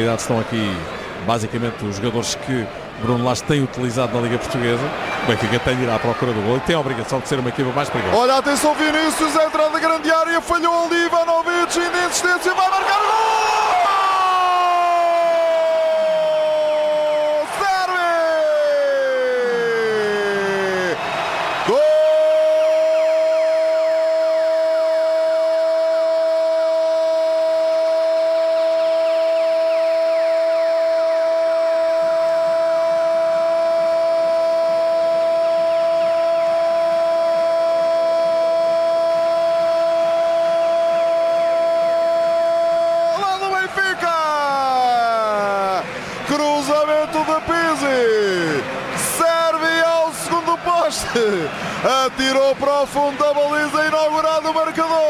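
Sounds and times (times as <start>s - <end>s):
radio commentator shouting goal: 3.9s - 21.0s, 21.6s - 55.0s.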